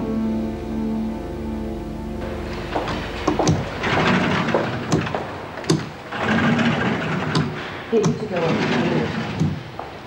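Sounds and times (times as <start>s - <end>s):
motorised gate buzzing: 2.2s - 9.7s
gate mechanism clicks and clunks: 2.2s - 9.8s.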